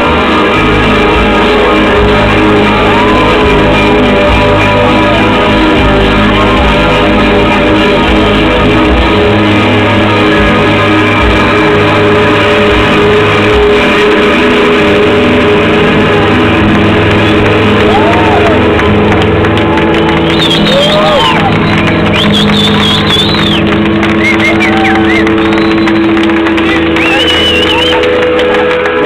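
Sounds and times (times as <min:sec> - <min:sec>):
live band holding a chord: 0:00.0 - 0:29.0
audience cheering and whistling: 0:17.1 - 0:29.0.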